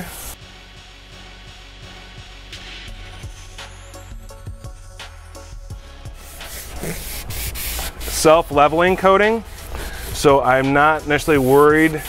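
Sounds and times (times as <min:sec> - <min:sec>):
background music: 0:00.0 - 0:12.0
foam scratchy rubbing on leather: 0:06.2 - 0:12.0.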